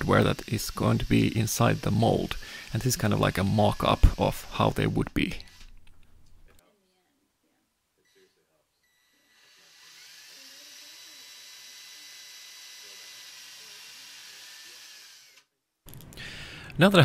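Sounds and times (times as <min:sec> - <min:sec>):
cordless drill motor whine: 0:00.0 - 0:05.8, 0:08.1 - 0:15.5.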